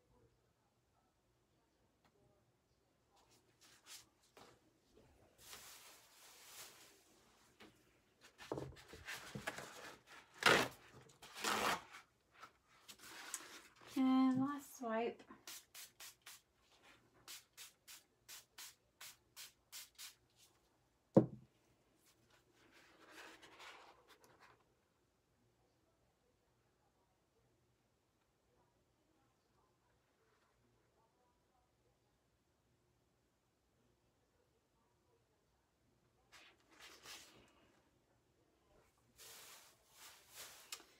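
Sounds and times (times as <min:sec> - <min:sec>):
paper towels rustling: 0:03.3 - 0:14.3, 0:36.3 - 0:37.7, 0:39.1 - 0:40.9.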